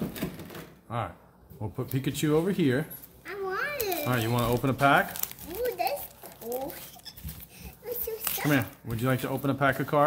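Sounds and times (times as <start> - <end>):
foil wrappers crinkling: 3.0 - 10.0
young child's voice: 3.2 - 4.3, 5.4 - 7.0, 7.6 - 8.7.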